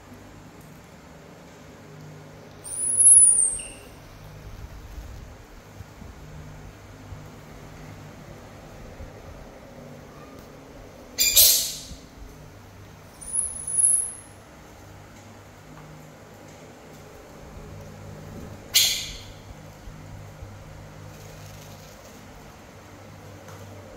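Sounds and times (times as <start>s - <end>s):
baby monkey squealing: 2.7s - 4.0s, 11.2s - 12.0s, 13.2s - 14.3s, 18.8s - 19.4s.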